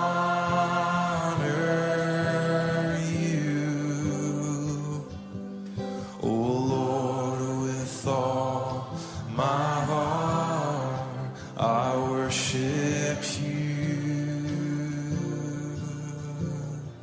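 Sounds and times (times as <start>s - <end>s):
person singing slow song: 0.0s - 17.0s.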